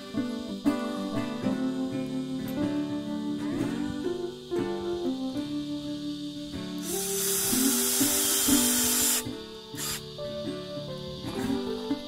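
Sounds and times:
acoustic guitar music: 0.0s - 12.0s
cordless drill into wood: 6.8s - 9.2s, 9.8s - 10.0s.

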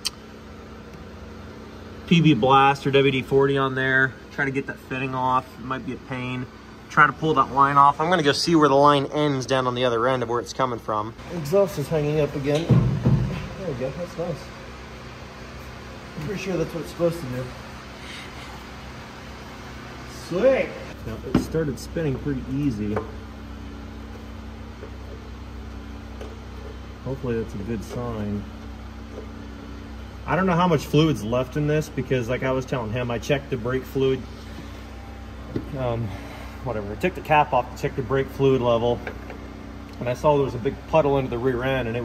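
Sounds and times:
machine hum and hiss: 0.0s - 42.0s.

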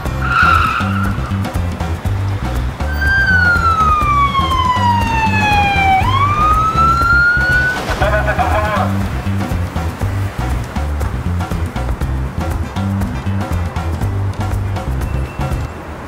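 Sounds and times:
music with steady beat: 0.0s - 15.7s
police siren wailing: 0.2s - 1.4s, 2.9s - 8.8s.

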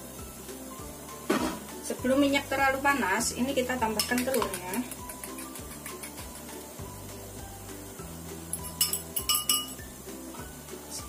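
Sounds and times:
background music with bass line: 0.0s - 11.0s
spoon clinking against ceramic bowl: 4.0s - 6.5s, 8.5s - 9.8s.

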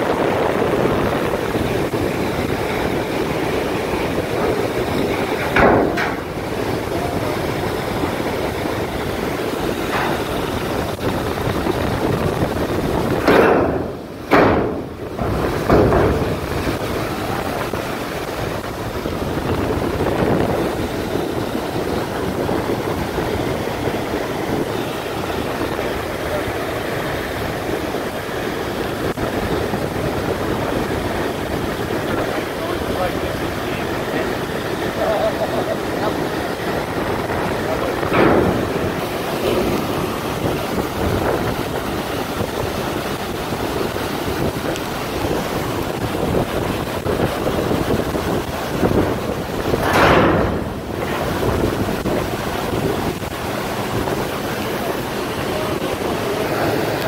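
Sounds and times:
river water rushing: 0.0s - 57.0s
wind on microphone: 0.0s - 57.0s
water surge or knock: 4.2s - 6.8s, 8.6s - 19.6s, 36.1s - 41.4s, 48.8s - 52.8s.

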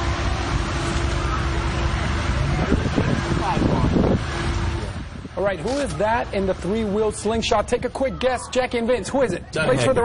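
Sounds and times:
engine low rumble: 0.0s - 10.0s.

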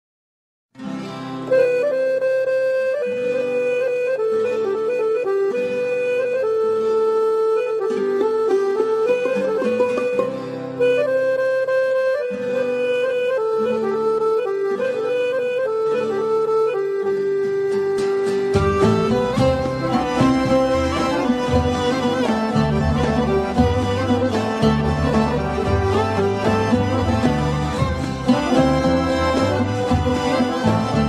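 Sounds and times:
accordion melody: 0.8s - 31.0s
light musical accompaniment: 0.8s - 31.0s.

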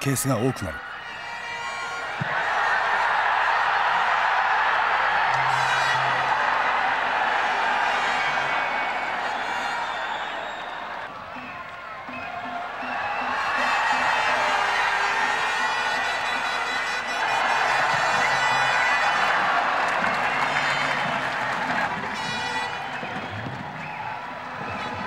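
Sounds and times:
stadium crowd noise: 0.0s - 25.0s.

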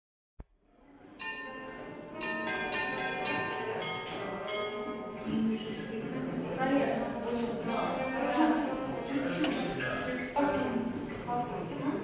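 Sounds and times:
church bells ringing: 1.2s - 5.4s.

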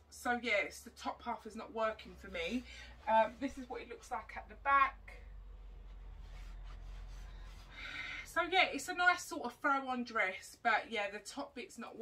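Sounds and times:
dress fabric rustling: 2.0s - 4.4s, 5.6s - 7.9s
short breath: 7.2s - 8.3s.

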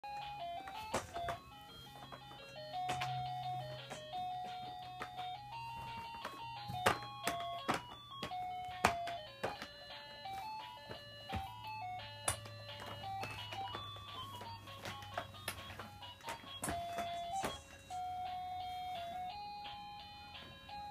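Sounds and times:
electronic toy beeping melody: 0.1s - 20.9s.

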